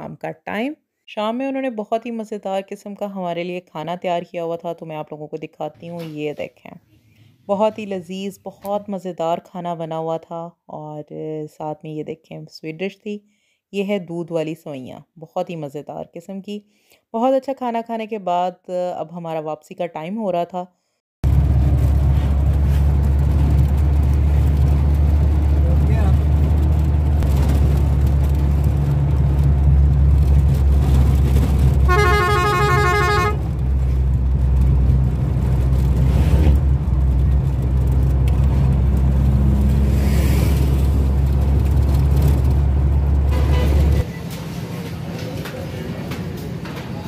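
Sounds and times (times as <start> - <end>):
road vehicle rumble: 21.2 - 47.0
vehicle horn honk: 31.9 - 33.5, 43.3 - 44.0.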